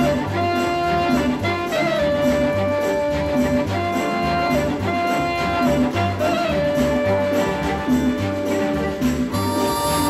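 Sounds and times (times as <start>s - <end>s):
latin dance orchestra music: 0.0s - 10.0s.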